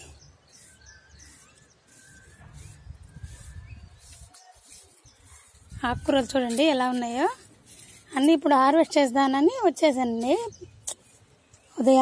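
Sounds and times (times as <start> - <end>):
faint bird chirps: 0.0 - 6.3
low outdoor background noise: 0.0 - 12.0.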